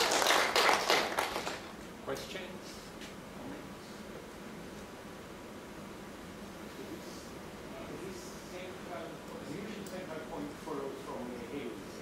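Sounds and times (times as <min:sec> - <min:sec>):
audience applause: 0:00.0 - 0:01.7.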